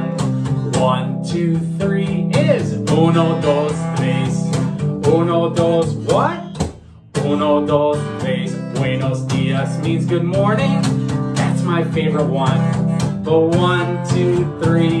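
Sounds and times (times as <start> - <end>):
acoustic guitar strumming: 0.0 - 15.0
man singing: 0.0 - 15.0.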